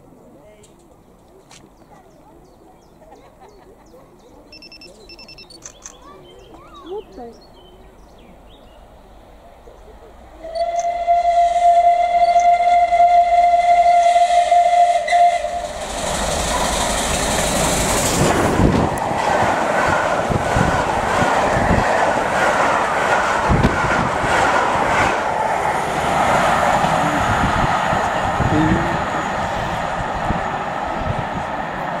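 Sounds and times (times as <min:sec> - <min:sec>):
train rushing past: 0:08.0 - 0:32.0
steam locomotive whistle: 0:10.4 - 0:17.0.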